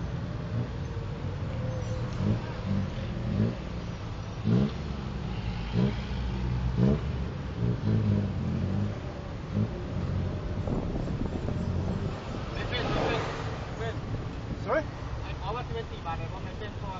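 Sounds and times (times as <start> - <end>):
road noise: 0.0 - 16.9
small engine revving: 4.4 - 10.2.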